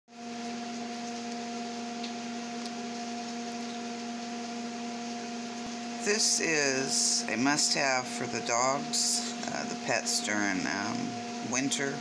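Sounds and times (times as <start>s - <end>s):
steady hum: 0.2s - 12.0s.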